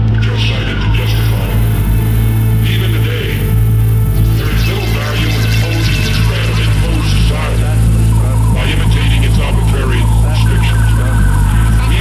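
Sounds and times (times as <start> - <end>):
electronic hip-hop music: 0.0 - 12.0.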